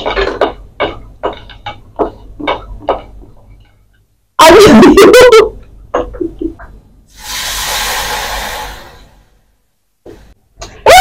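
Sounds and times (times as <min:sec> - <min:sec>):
hiss: 0:07.1 - 0:09.5.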